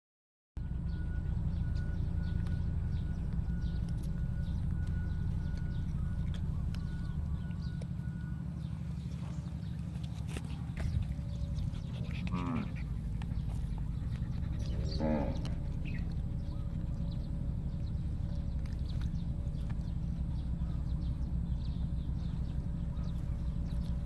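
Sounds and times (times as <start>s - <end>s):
low outdoor rumble: 0.6s - 24.0s.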